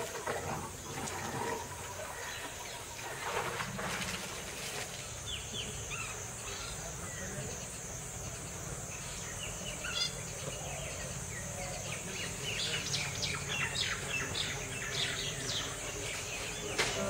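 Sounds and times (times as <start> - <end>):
high insect drone: 1.5 - 17.0
birds chirping: 5.0 - 17.0.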